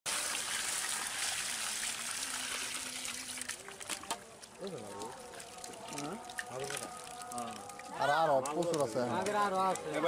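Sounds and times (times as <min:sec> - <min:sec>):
water gushing from a pipe: 0:00.1 - 0:08.9.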